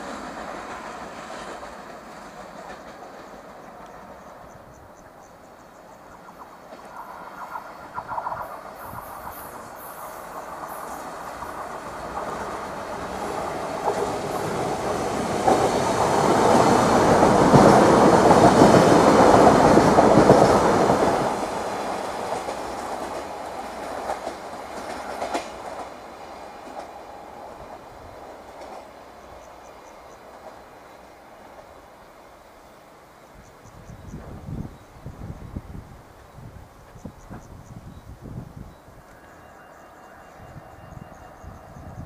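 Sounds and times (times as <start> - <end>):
train wheels clattering over rail joints: 0.0 - 4.8, 6.6 - 29.5.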